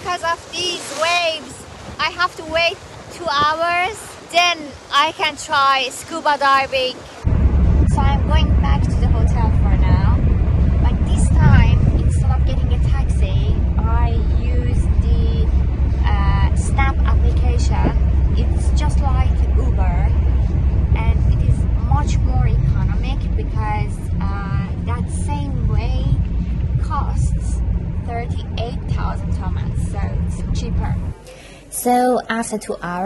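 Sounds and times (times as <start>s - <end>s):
woman talking: 0.0s - 7.1s, 7.8s - 10.2s, 10.8s - 20.2s, 20.8s - 33.0s
car cabin rumble: 7.3s - 31.2s.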